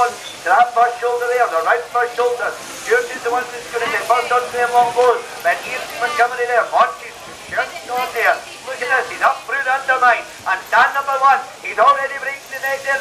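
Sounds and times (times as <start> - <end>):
man commentating: 0.0 - 13.0.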